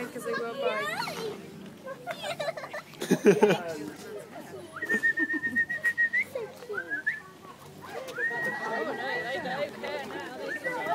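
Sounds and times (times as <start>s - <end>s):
person whistling: 4.8s - 7.2s.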